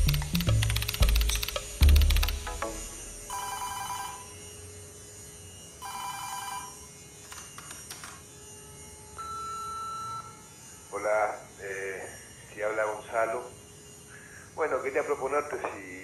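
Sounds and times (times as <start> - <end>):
telephone ringing: 3.3 - 4.4, 5.8 - 6.9.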